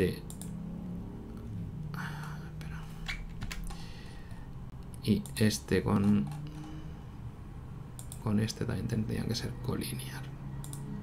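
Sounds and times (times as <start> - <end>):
low steady hum: 0.0 - 11.0
computer mouse and keyboard clicks: 3.0 - 3.9, 4.9 - 6.8, 8.0 - 8.3, 10.6 - 10.9.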